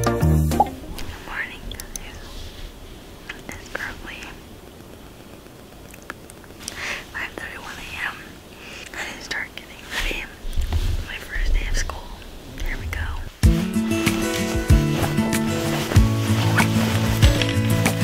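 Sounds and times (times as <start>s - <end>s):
music with sustained tones and beat: 0.0s - 1.0s, 13.4s - 18.0s
person whispering: 1.0s - 2.6s, 3.3s - 4.5s, 6.7s - 13.4s.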